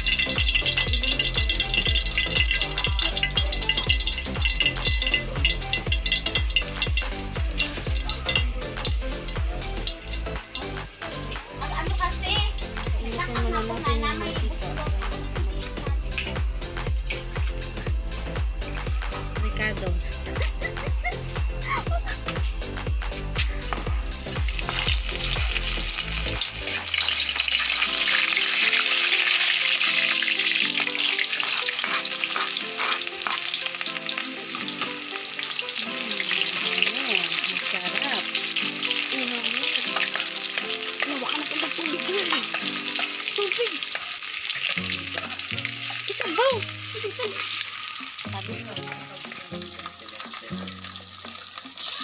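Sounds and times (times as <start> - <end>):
metal spatula scraping a wok: 0.0 - 8.9, 24.5 - 35.6, 40.0 - 46.3
onion and garlic sizzling in oil: 0.0 - 52.0.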